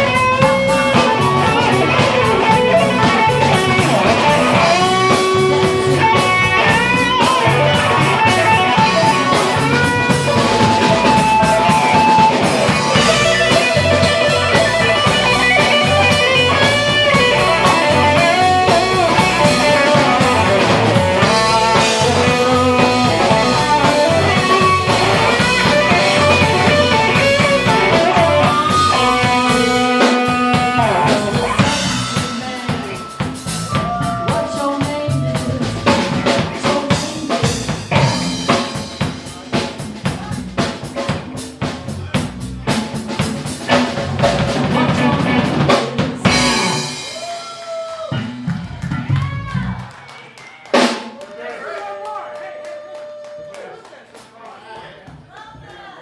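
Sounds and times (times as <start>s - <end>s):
blues band playing: 0.0s - 54.3s
drums: 0.0s - 56.0s.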